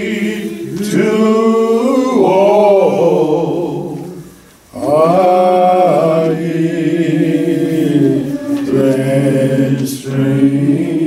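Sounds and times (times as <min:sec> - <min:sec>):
unaccompanied hymn singing: 0:00.0 - 0:11.0.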